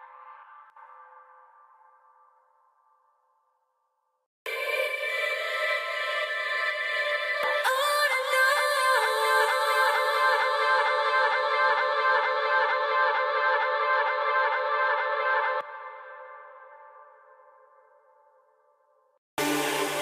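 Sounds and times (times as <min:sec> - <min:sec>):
trance music with synths: 0:04.5 - 0:15.7, 0:19.4 - 0:20.0.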